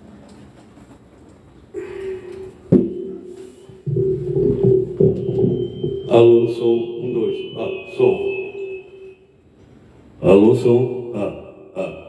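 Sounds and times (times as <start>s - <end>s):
guitar note ringing: 2.0s - 9.6s.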